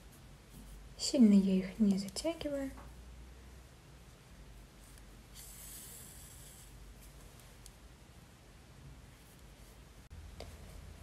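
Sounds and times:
yarn drawn through fabric hiss: 0:04.2 - 0:07.6.

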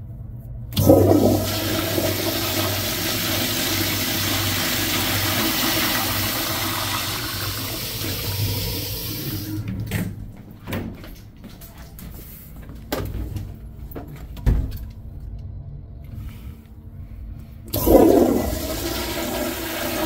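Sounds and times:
toilet flushing: 0:00.8 - 0:09.8, 0:17.7 - 0:20.0.

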